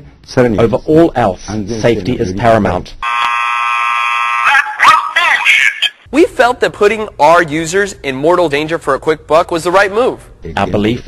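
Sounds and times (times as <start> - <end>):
buzzing electronic tone: 3.0 - 4.4
person speaking: 4.5 - 8.6, 9.6 - 11.0.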